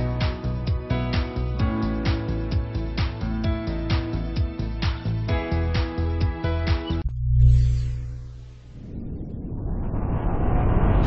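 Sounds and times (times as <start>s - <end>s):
rumbling whoosh riser: 7.1s - 11.0s.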